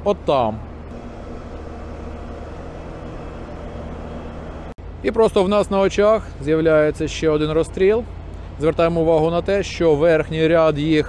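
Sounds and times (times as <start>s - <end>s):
construction machinery engine drone: 0.0s - 11.0s.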